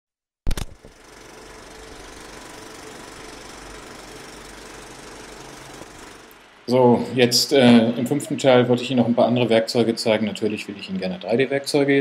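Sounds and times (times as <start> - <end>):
film projector clack: 0.5 - 6.6
fast mechanical rattle: 0.5 - 7.4
low hum: 0.7 - 12.0.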